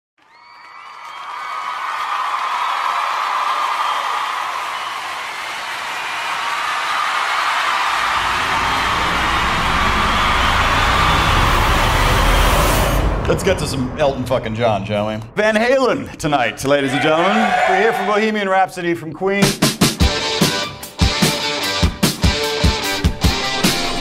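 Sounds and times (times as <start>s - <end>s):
audience cheering and whooping: 0.2s - 13.0s, 16.7s - 18.2s
deep low rumble: 8.0s - 16.8s.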